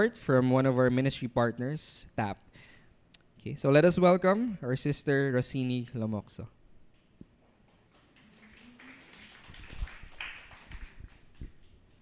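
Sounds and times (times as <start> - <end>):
faint light applause: 7.6 - 12.0.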